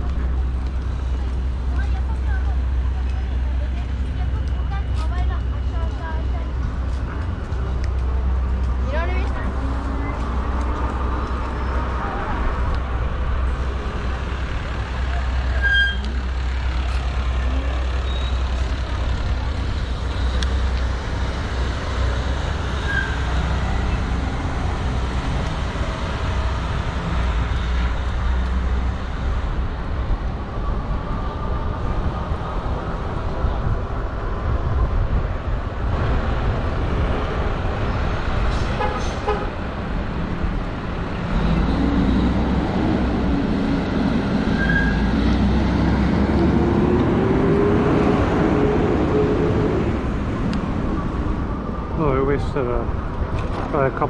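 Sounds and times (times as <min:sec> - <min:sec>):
street traffic: 0:00.0 - 0:54.0
wind rumble on microphone: 0:16.9 - 0:54.0.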